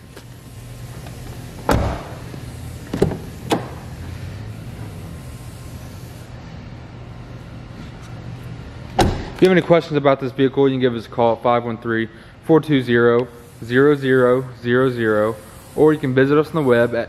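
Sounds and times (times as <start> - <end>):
car door shutting: 1.6 - 3.9, 9.0 - 9.4.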